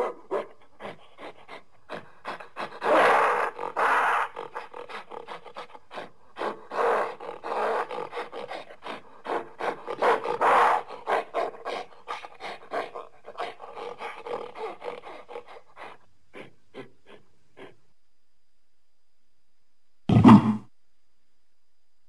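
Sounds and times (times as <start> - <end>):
monster growls and roars: 20.1 - 20.6.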